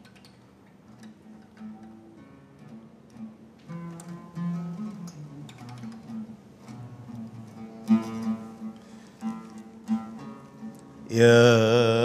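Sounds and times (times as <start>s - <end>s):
oud plucked notes: 2.4s - 12.0s.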